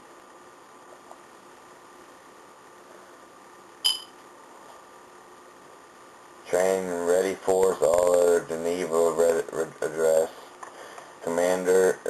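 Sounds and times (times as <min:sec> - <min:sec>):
faint room hiss: 0:00.0 - 0:12.0
sharp click with high ring: 0:03.8 - 0:04.2.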